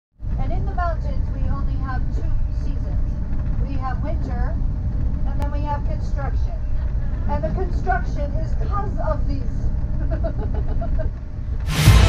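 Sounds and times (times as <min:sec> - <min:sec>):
car interior road rumble: 0:00.2 - 0:11.7.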